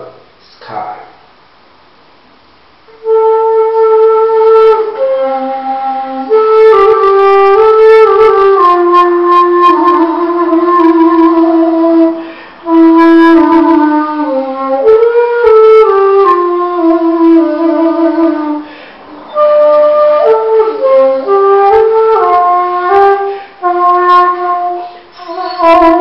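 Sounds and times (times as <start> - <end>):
wooden flute melody: 2.9 - 26.0.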